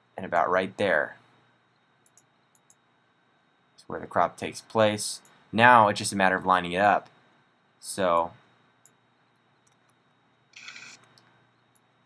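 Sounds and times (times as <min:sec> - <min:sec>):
faint clicks: 0:01.7 - 0:02.8.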